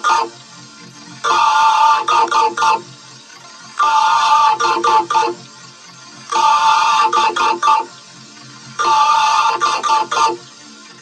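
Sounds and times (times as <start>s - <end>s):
bright computer system sound: 3.8s - 5.4s.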